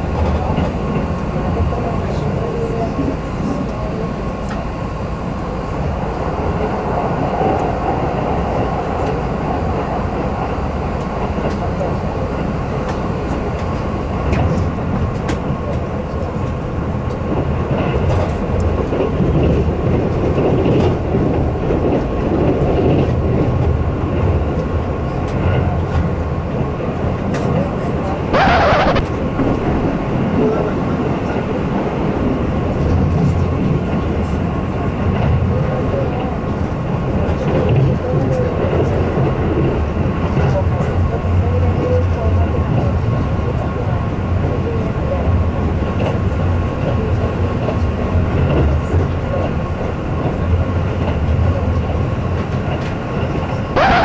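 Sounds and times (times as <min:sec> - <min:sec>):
train wheels rumbling: 0:00.0 - 0:54.0.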